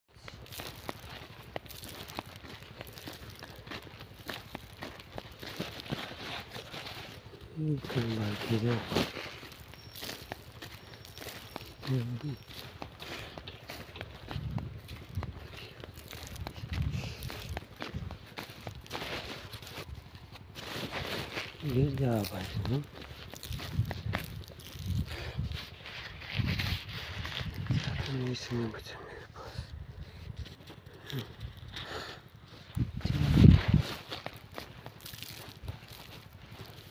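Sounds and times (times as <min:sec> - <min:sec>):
footsteps crunching on dry soil: 0:00.1 - 0:36.9
rustle: 0:00.6 - 0:15.0, 0:16.1 - 0:28.7.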